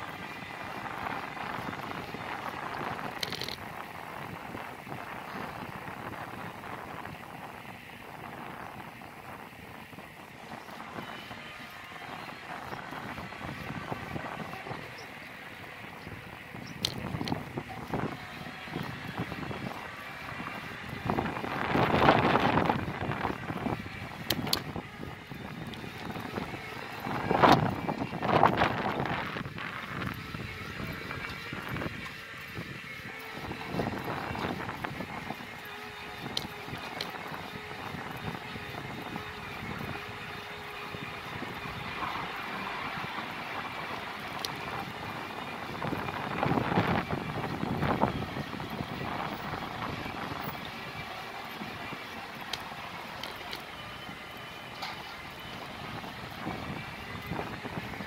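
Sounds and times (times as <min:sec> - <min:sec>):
bicycle tyres rolling on pavement: 0:00.0 - 0:58.0
wind buffeting microphone: 0:00.0 - 0:58.0.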